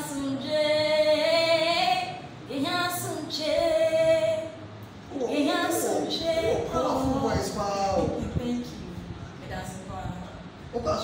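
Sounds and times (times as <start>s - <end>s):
woman singing unaccompanied: 0.0s - 7.6s.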